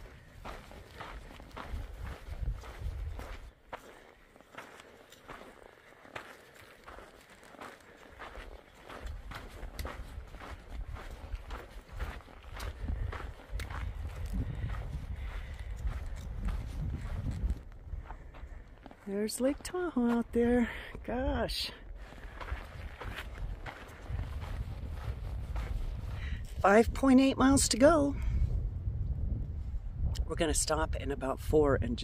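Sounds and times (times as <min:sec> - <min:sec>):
footsteps crunching on trail: 0:00.0 - 0:27.8
low rumble on microphone: 0:12.8 - 0:18.6, 0:22.8 - 0:31.0.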